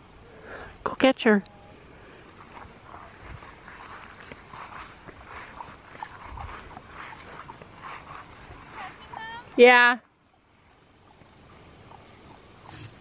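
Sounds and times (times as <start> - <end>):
footsteps through grass: 2.4 - 9.6.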